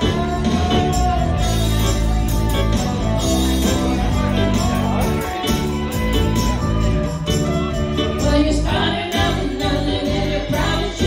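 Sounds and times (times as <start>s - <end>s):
drums: 0.0s - 11.0s
electric guitar: 0.0s - 11.0s.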